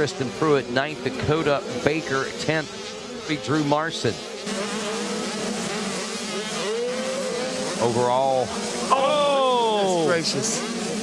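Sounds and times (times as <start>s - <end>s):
motocross bikes revving: 0.0s - 11.0s.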